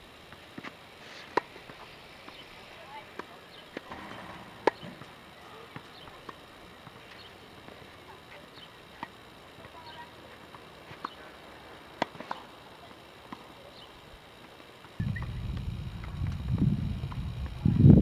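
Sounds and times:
tennis balls bouncing on court: 0.3 - 13.8
rackets striking tennis balls: 0.5 - 13.8.

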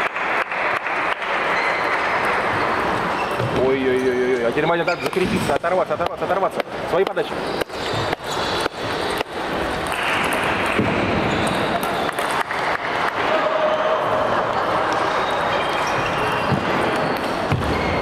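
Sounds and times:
din of voices in hall: 0.0 - 7.4, 8.1 - 18.0.

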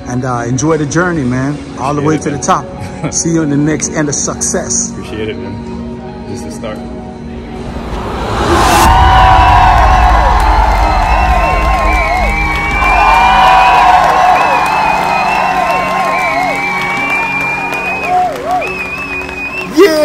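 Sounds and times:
heavy steady bass: 7.4 - 16.0.

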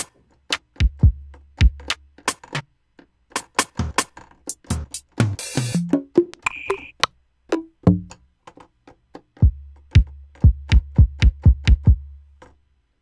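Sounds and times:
brief high tone: 6.4 - 7.0
short high clicks: 6.4 - 7.1.

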